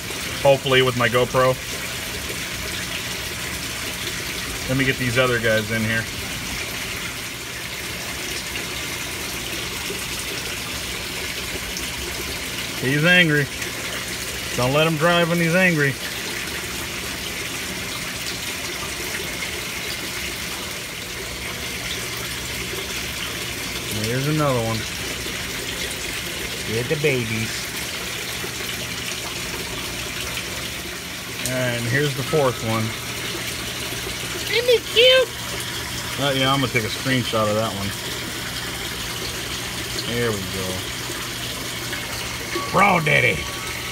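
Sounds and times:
water running into tank: 0:00.0 - 0:43.9.

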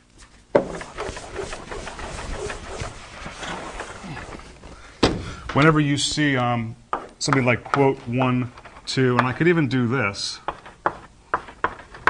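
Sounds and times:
eraser rubbing on blackboard: 0:00.6 - 0:04.5.

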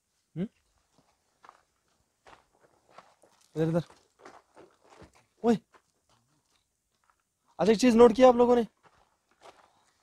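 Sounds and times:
footsteps on gravelly dirt: 0:00.6 - 0:10.0.

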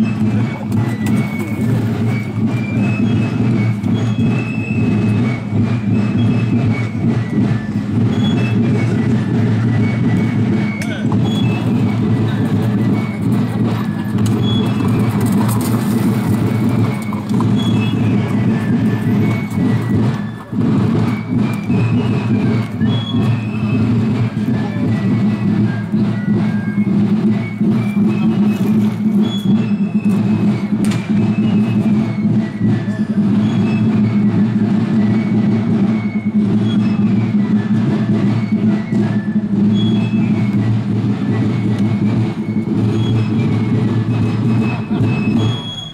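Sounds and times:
continuous drum rumble: 0:00.0 - 0:45.9.

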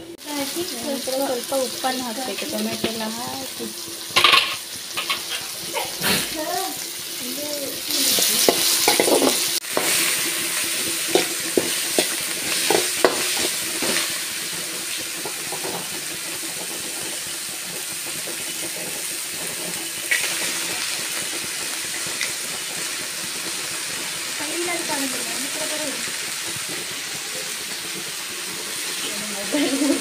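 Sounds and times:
vegetables sizzling in oil: 0:00.0 - 0:30.0
metal spoon scraping a pan: 0:04.1 - 0:06.3, 0:07.9 - 0:14.2.

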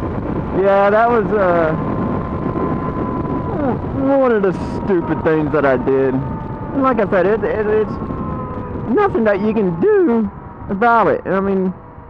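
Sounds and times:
motorcycle engine running: 0:00.0 - 0:12.0
wind rush on microphone: 0:00.0 - 0:12.0.

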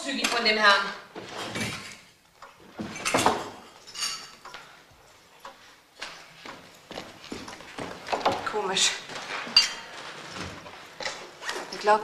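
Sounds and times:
china cups clinking: 0:03.0 - 0:04.5
footsteps on a hard floor: 0:05.6 - 0:11.7.

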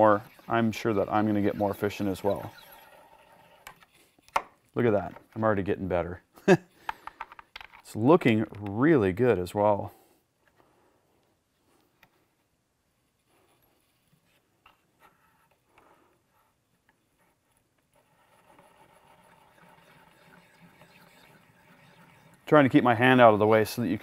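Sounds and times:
case trimmer scraping brass: 0:00.0 - 0:04.1.

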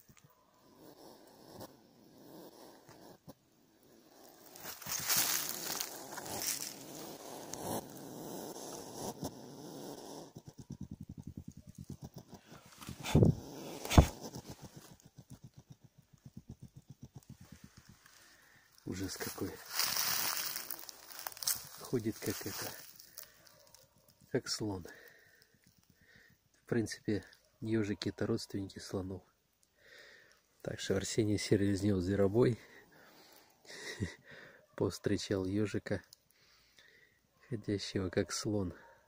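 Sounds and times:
hedgehog huffing and puffing: 0:00.8 - 0:21.9
hedgehog sharp snorts: 0:05.4 - 0:10.7, 0:11.8 - 0:15.8.

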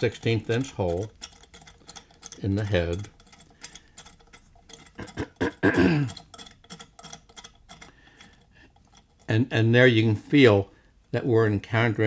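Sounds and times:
metallic ticks and light scraping: 0:00.0 - 0:12.0.

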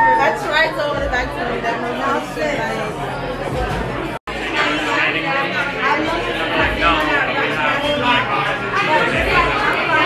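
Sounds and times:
women talking and chattering: 0:00.0 - 0:10.0.

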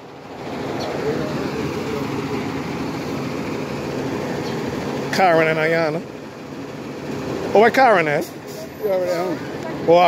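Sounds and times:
bus engine idling: 0:00.0 - 0:10.0.

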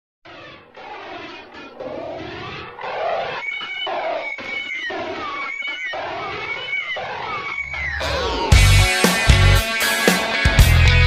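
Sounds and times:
high whine sliding down: 0:07.4 - 0:08.8.

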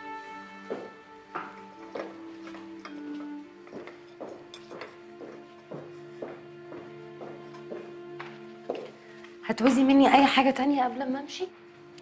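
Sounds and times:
quiet background score: 0:00.0 - 0:12.0.

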